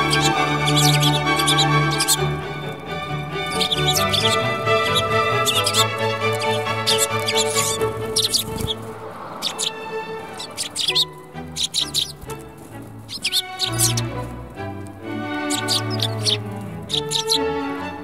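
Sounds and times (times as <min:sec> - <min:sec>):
background music with held notes: 0:00.0 - 0:18.0
sparrows chirping: 0:00.0 - 0:18.0.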